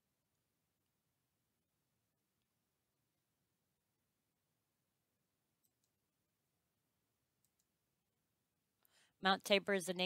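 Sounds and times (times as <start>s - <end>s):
computer mouse clicks: 5.6s - 6.1s, 7.4s - 7.8s.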